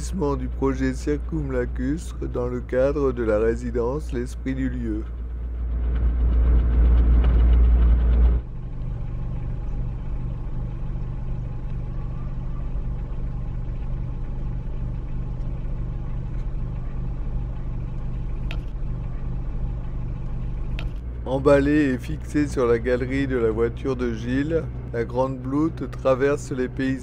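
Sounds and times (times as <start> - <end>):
car engine idling: 0.0 - 27.0
road and engine rumble: 0.0 - 27.0.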